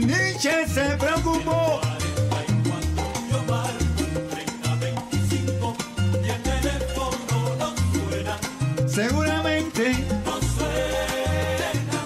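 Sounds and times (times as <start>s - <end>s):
bass line: 0.0s - 12.0s
person singing: 0.0s - 12.0s
salsa music: 0.0s - 12.0s.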